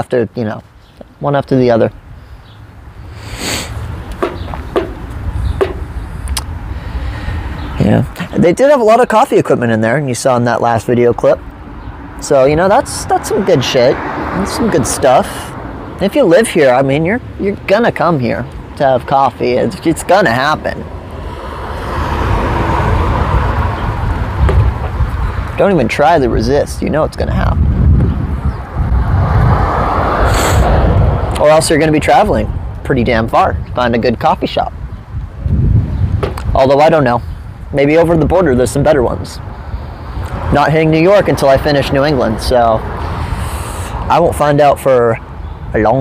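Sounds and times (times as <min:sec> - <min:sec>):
car passing on road: 0:11.3 - 0:17.4, 0:19.8 - 0:25.9, 0:28.1 - 0:32.0, 0:39.4 - 0:44.5.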